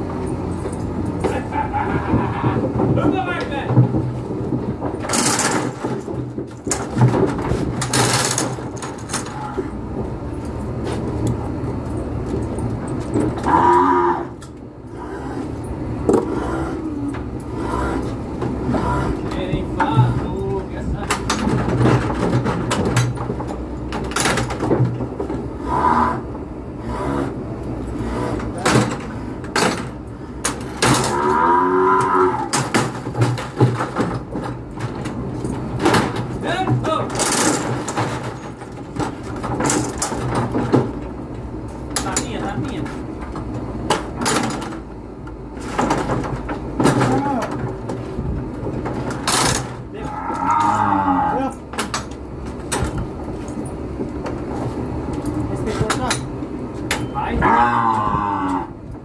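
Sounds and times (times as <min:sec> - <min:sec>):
knocks and clanks from chute: 0:00.0 - 0:59.0
calf bawling: 0:01.2 - 0:02.8, 0:13.4 - 0:15.6, 0:16.2 - 0:19.4, 0:25.6 - 0:27.4, 0:30.9 - 0:32.6, 0:49.9 - 0:51.6, 0:57.2 - 0:58.8.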